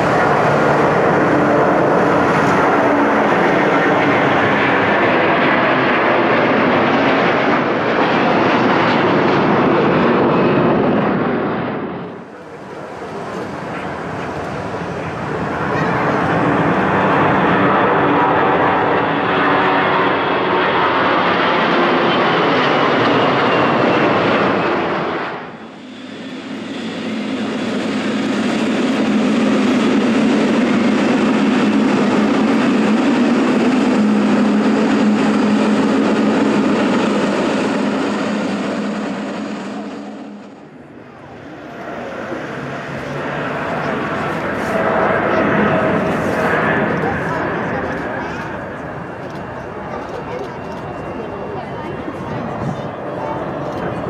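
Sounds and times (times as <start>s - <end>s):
jet engines at high thrust: 0.0s - 54.0s.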